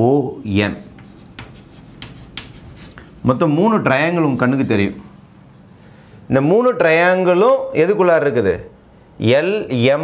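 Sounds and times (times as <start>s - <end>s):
chalk scratching on blackboard: 0.7s - 3.6s, 4.3s - 5.0s
man talking: 3.2s - 5.1s.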